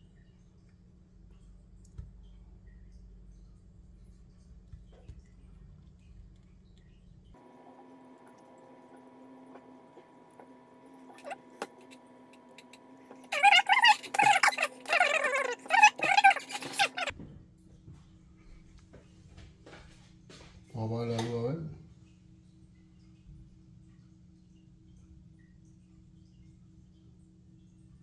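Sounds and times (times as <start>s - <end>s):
faint room rumble: 0.0s - 22.2s.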